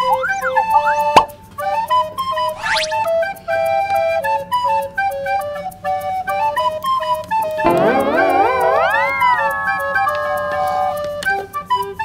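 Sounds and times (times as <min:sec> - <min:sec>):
rising whistle sound effect: 0:00.0 - 0:01.3, 0:02.4 - 0:03.3, 0:07.6 - 0:11.9
flute-like melody over light beat: 0:00.0 - 0:12.0.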